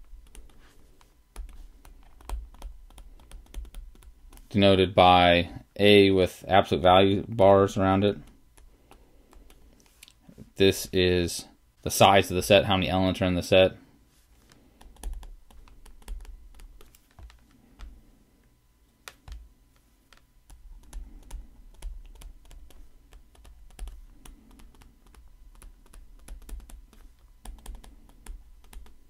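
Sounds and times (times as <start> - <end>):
stylus tapping on tablet screen: 0.0 - 4.5, 14.5 - 18.0, 19.0 - 19.5, 20.1 - 29.0.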